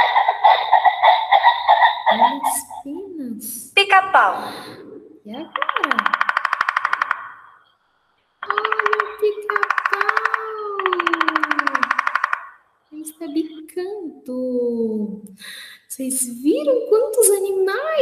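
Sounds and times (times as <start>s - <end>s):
woodpecker drumming on wood: 0.0s - 2.9s, 5.5s - 12.7s.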